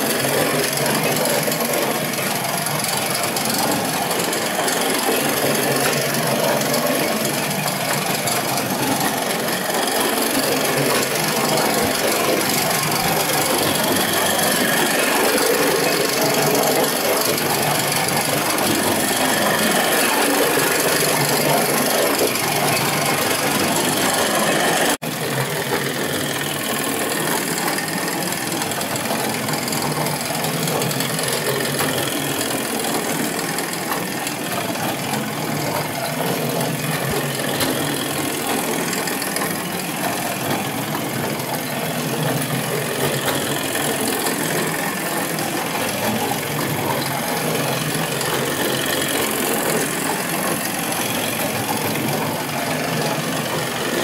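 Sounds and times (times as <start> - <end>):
toy tractor motor whirring and rattling: 0.0 - 54.0.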